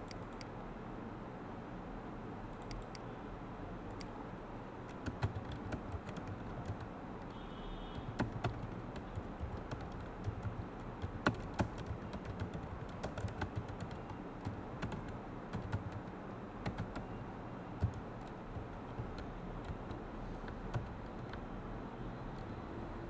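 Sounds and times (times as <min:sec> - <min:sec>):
keyboard typing clicks: 0:00.0 - 0:00.5, 0:02.5 - 0:03.0, 0:03.9 - 0:04.2, 0:04.9 - 0:17.1, 0:17.8 - 0:21.4.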